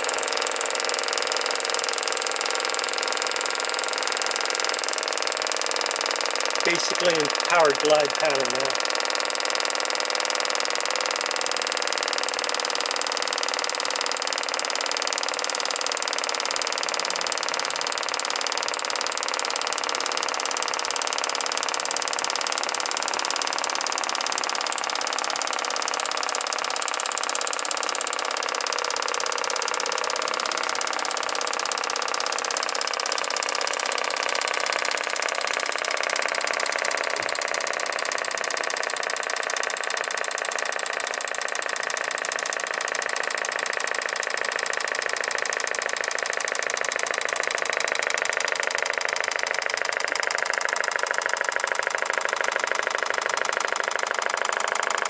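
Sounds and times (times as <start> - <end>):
model engine running: 0.0 - 55.0.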